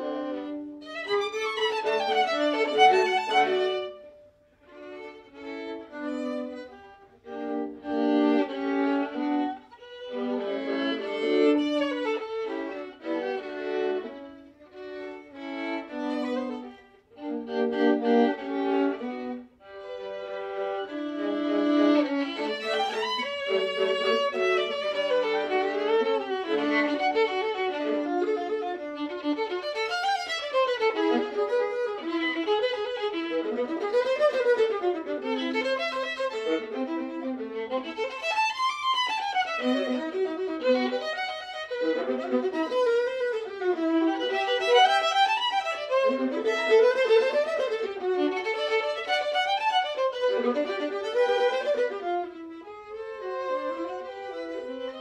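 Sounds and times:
violin and viola duo: 0.0s - 55.0s.

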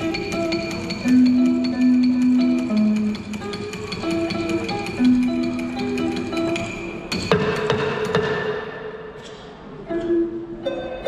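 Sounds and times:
lute notes: 0.0s - 11.0s.

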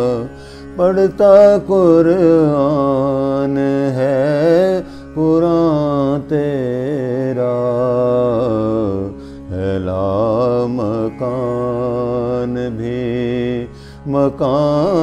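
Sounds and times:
man singing melismatically: 0.0s - 15.0s
breaths: 0.3s - 0.8s, 4.8s - 5.2s, 9.1s - 9.5s, 13.7s - 14.1s.

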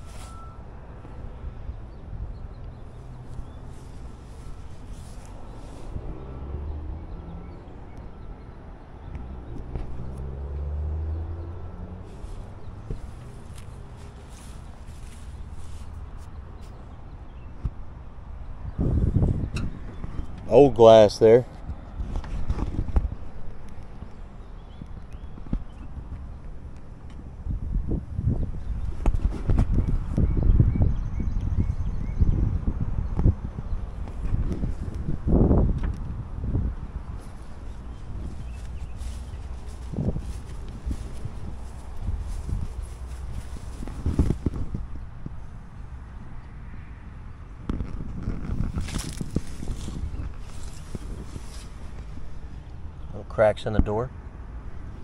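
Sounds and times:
footsteps on grass: 3.6s - 6.0s, 12.1s - 16.8s, 37.2s - 45.0s, 48.2s - 52.5s.

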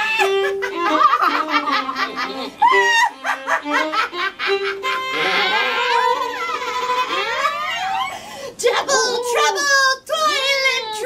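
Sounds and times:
voice wailing: 4.9s - 8.2s.

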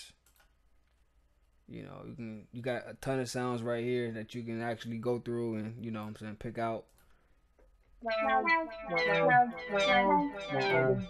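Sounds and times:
brassy synth notes sliding down: 8.0s - 11.0s.

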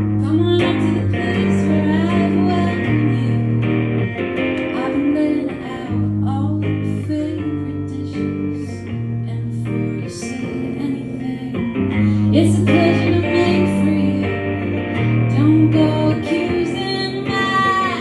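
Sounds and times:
strummed electric guitar: 0.0s - 18.0s
woman singing: 0.0s - 18.0s.

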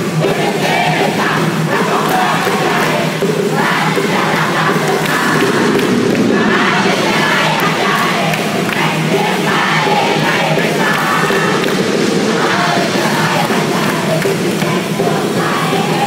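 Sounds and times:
music over sound system: 0.0s - 16.0s
people shouting and chanting: 0.0s - 16.0s.

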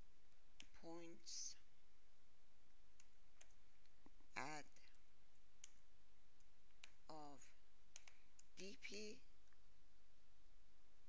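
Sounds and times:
person's voiced hesitation sound: 0.7s - 1.6s, 4.4s - 4.9s, 7.1s - 7.6s.

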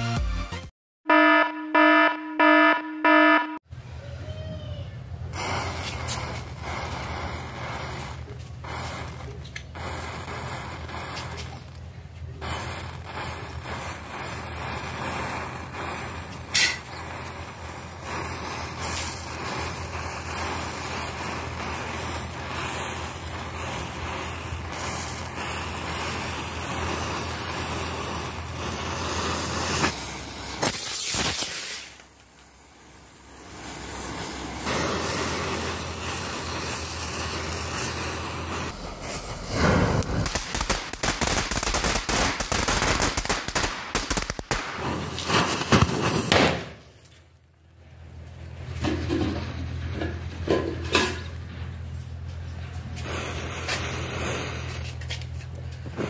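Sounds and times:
fireworks popping and cracking: 5.3s - 56.0s
matchsticks flaring with hissing crackle: 5.4s - 32.6s, 33.2s - 42.0s, 44.2s - 46.4s, 50.0s - 56.0s.

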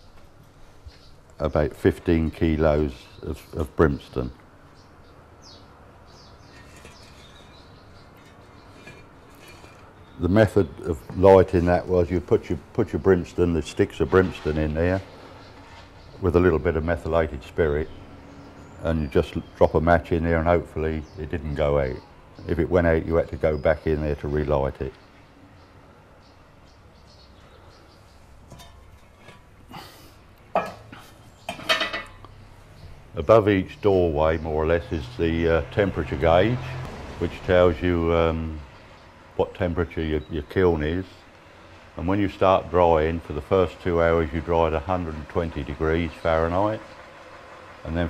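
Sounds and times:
small birds chirping: 0.0s - 48.0s
metal pan clanking: 28.5s - 29.5s, 30.5s - 30.9s, 31.5s - 32.2s.

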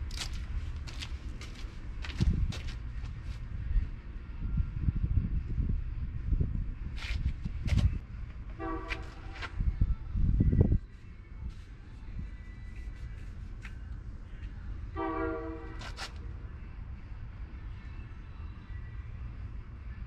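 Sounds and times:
horn blasts: 8.5s - 9.6s, 14.9s - 16.0s.

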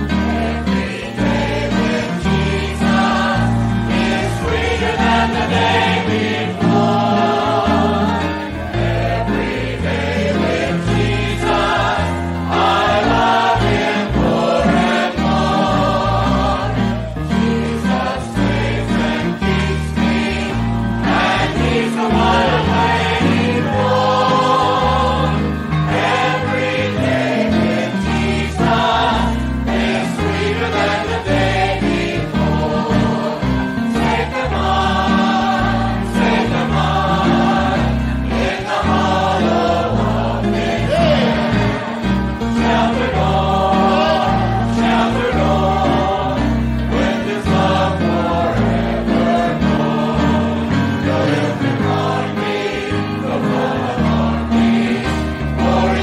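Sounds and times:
choir singing a hymn: 0.0s - 56.0s
instrumental accompaniment: 0.0s - 56.0s.

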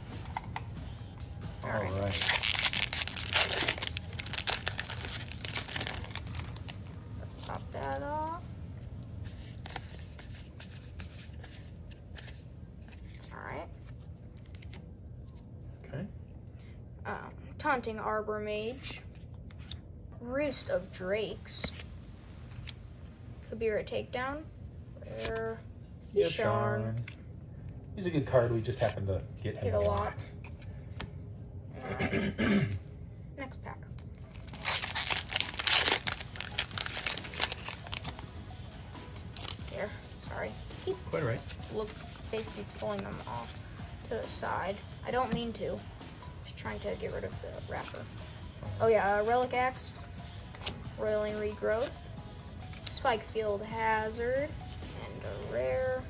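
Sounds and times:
foil wrapper crinkling: 1.8s - 7.6s, 34.2s - 38.2s.

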